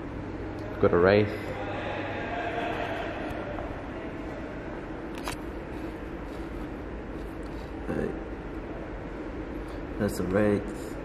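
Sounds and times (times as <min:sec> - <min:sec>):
indoor room noise: 0:00.0 - 0:11.0.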